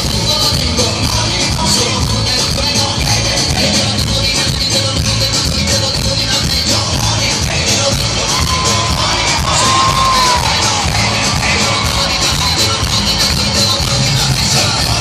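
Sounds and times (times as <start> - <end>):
live band music: 0.0 - 15.0.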